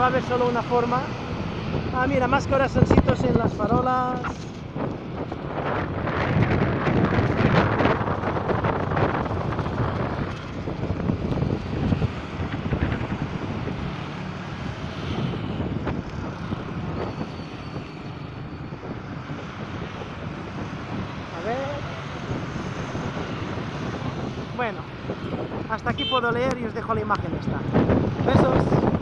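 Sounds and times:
road traffic passing: 0:00.0 - 0:29.0
wind buffeting microphone: 0:00.0 - 0:29.0.

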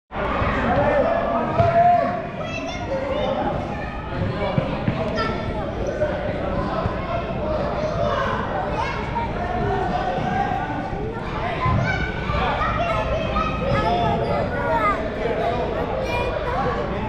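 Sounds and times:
balls bouncing on gym floor: 0:01.5 - 0:01.8.

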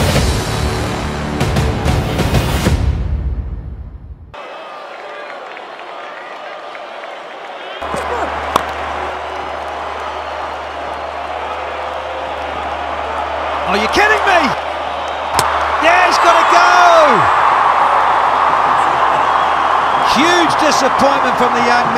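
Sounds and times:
cricket bat striking ball: 0:07.9 - 0:08.8, 0:15.4 - 0:15.6.

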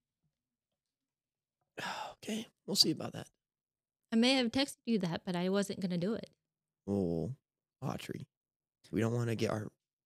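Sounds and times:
man talking: 0:01.8 - 0:03.4, 0:06.9 - 0:08.3, 0:08.9 - 0:09.8.

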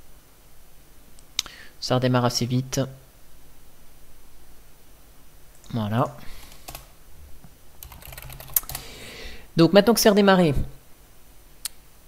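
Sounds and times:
typing on computer keyboard: 0:06.4 - 0:06.9, 0:07.8 - 0:08.9.

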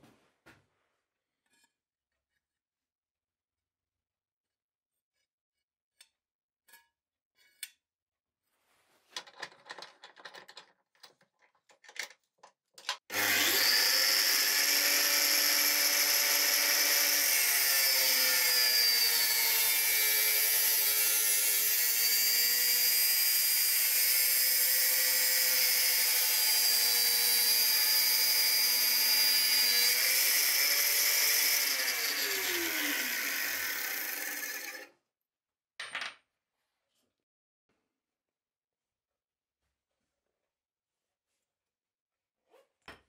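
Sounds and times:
angle grinder cutting steel: 0:13.1 - 0:34.9.

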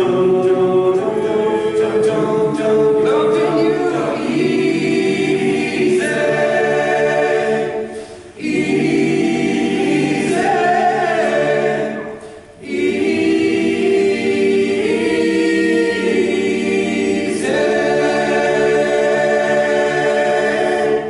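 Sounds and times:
men's choir singing: 0:00.0 - 0:21.0.

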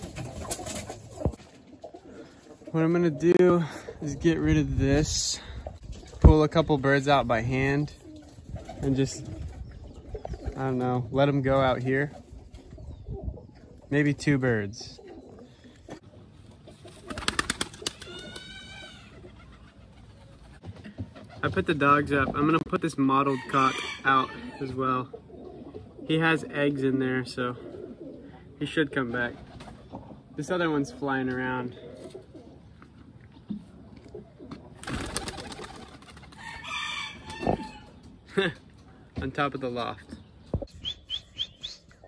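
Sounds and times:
pigeon wings flapping: 0:00.0 - 0:01.6, 0:16.8 - 0:18.5, 0:34.8 - 0:36.5.

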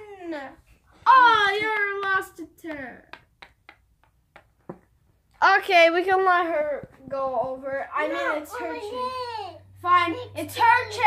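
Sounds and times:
game piece tapping on cardboard: 0:02.7 - 0:04.9.

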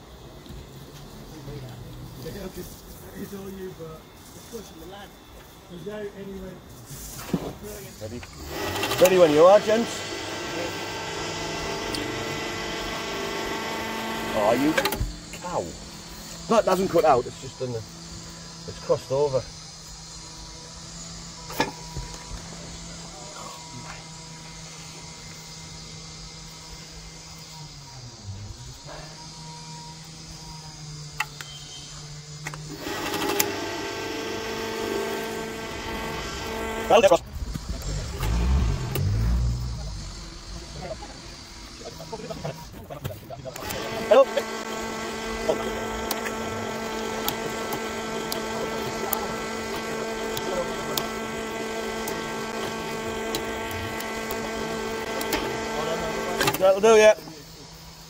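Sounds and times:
engine-driven winch running: 0:08.0 - 0:57.4
low thumps: 0:37.1 - 0:41.9.

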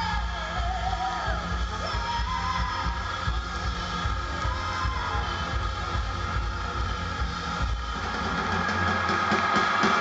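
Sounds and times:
live band music: 0:00.0 - 0:10.0
drum beat: 0:01.4 - 0:10.0.

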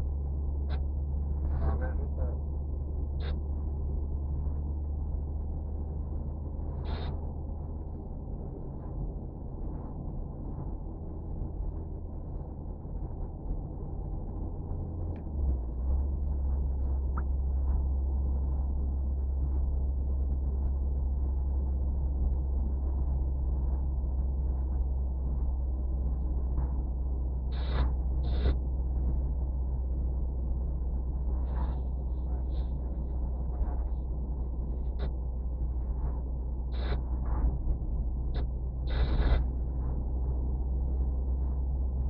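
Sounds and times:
car engine and tyres droning: 0:00.0 - 0:42.0.

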